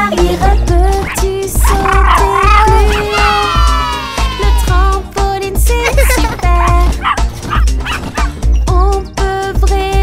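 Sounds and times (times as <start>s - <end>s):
children's song music: 0.0s - 10.0s
cartoon dog barking: 1.1s - 4.7s, 6.1s - 8.4s.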